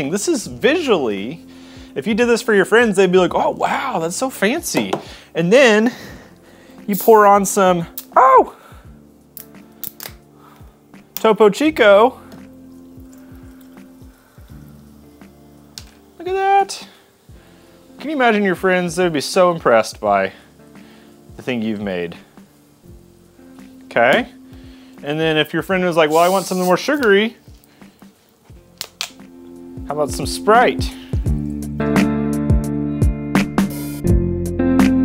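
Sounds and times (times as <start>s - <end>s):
quiet background music: 0.0s - 35.0s
bottle cap twisting open: 9.4s - 10.2s
fizzing water pouring into glass: 12.2s - 16.6s.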